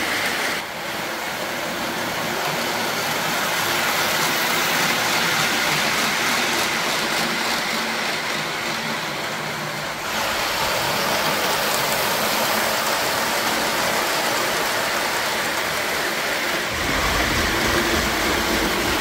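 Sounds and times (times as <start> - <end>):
model train wheels rumbling on track: 0.0 - 19.0.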